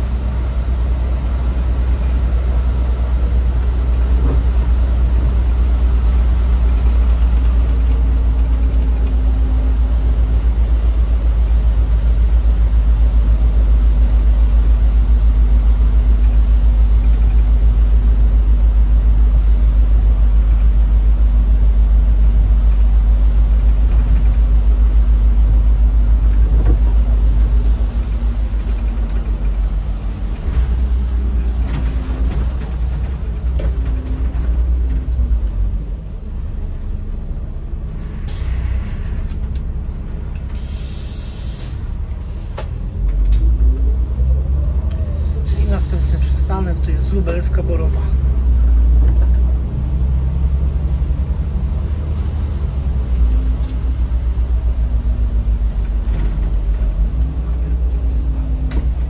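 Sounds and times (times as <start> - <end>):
bus engine drone: 0.0 - 59.0
road noise: 0.0 - 59.0.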